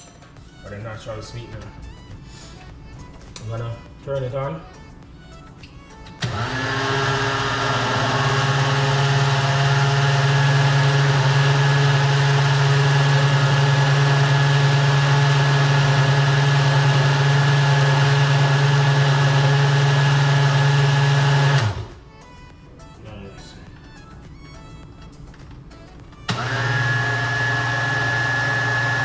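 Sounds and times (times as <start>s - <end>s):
blender motor running: 6.2s - 22.0s, 26.3s - 29.0s.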